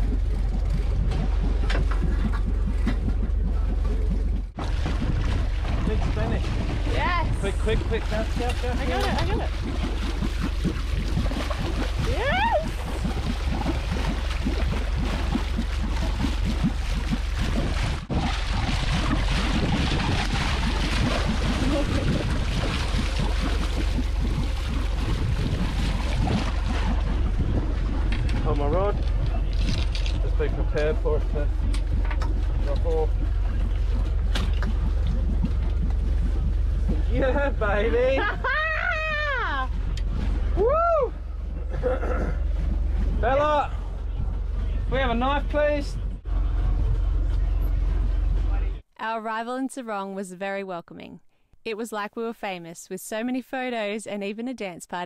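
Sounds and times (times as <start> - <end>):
constant low drone: 0.0 - 48.8
water noise: 0.0 - 49.2
wind: 0.0 - 55.0.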